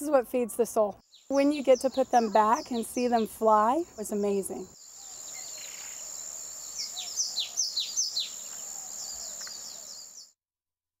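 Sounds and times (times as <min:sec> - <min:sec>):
bird chirping: 0:00.3 - 0:10.4.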